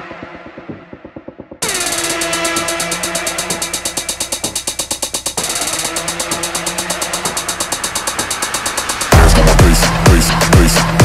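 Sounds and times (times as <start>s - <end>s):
rapid synth pulses: 1.5s - 11.0s
held synth note: 1.6s - 8.1s.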